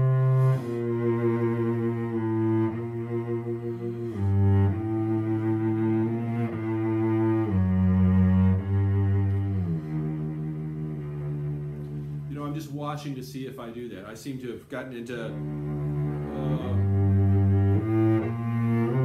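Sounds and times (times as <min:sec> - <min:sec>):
bowed cello notes: 0:00.0 - 0:19.0.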